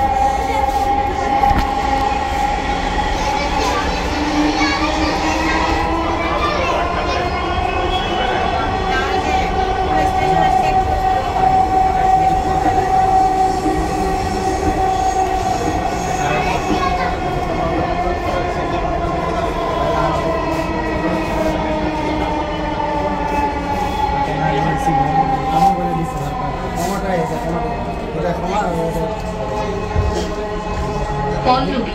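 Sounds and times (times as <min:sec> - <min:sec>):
electric train whine: 0:00.0 - 0:31.9
low train rumble: 0:00.0 - 0:31.9.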